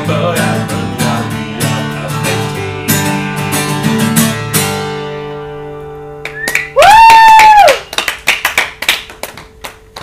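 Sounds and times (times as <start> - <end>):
acoustic guitar chord ringing: 0.0 - 6.3
audience hand clapping: 6.2 - 10.0
high-pitched cheer: 6.3 - 8.1.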